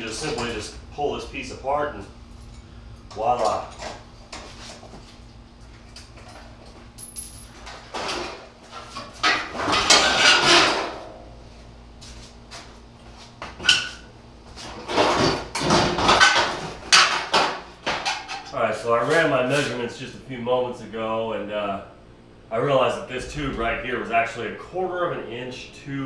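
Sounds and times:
metal panels rattling and scraping: 0:07.6 - 0:11.0, 0:14.7 - 0:18.5.

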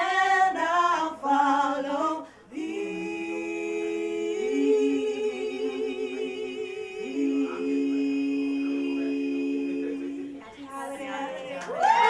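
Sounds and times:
women singing in harmony: 0:00.0 - 0:12.0.

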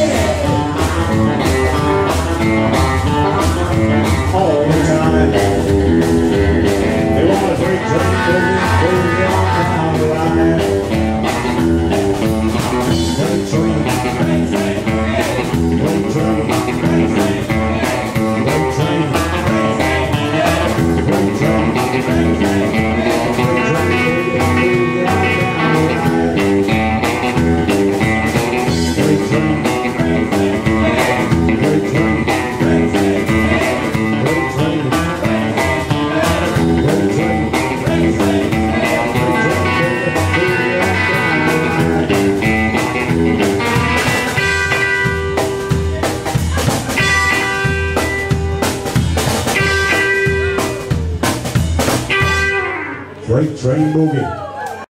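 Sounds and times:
steady driving beat: 0:00.0 - 0:52.7
double bass: 0:00.0 - 0:53.3
electric guitar: 0:00.0 - 0:54.8.

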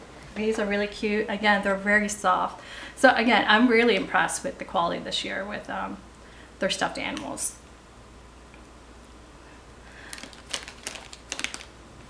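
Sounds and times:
plastic packaging crinkling: 0:10.0 - 0:11.8.

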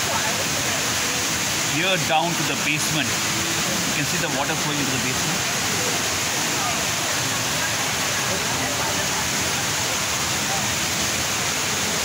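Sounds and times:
indoor waterfall rushing: 0:00.0 - 0:12.0.

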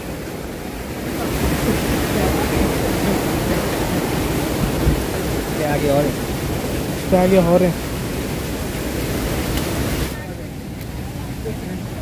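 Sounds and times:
stream water flowing over rocks: 0:00.0 - 0:12.0.

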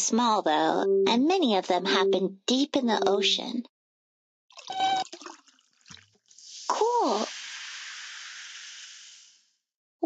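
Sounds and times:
fizzing hiss: 0:06.3 - 0:09.5.

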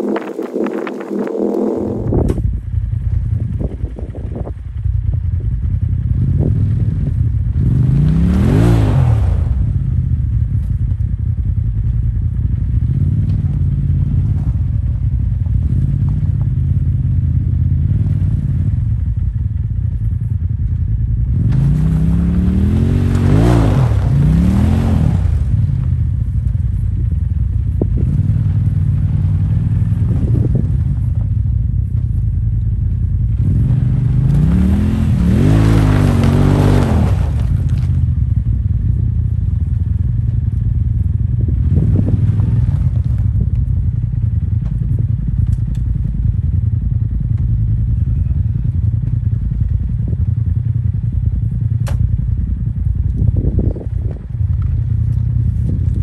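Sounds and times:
utility vehicle engine revving: 0:00.0 - 0:04.5, 0:05.7 - 0:39.0, 0:41.3 - 0:45.8.

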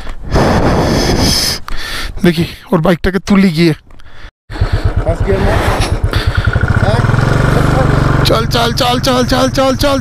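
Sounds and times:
motorcycle engine idling: 0:04.5 - 0:10.0.

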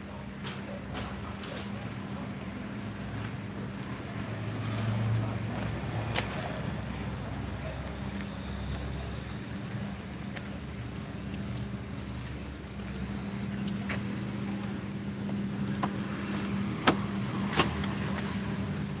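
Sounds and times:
short high beeps: 0:12.0 - 0:14.4.

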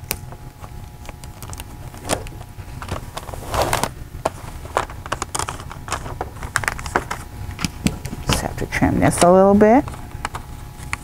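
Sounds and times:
wrapping paper crinkling: 0:00.5 - 0:07.3.

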